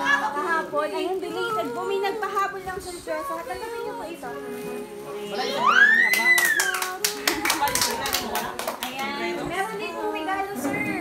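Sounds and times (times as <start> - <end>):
voices: 0.0 - 11.0
high whoop: 5.5 - 7.0
fast hand clapping: 6.1 - 9.2.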